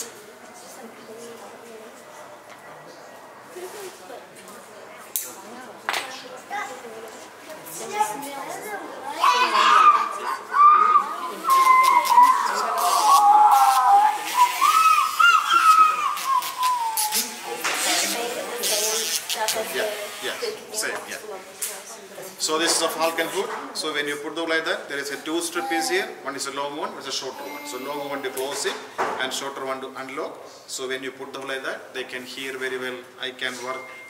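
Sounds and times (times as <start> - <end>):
faint voices murmuring: 0.0 - 23.8.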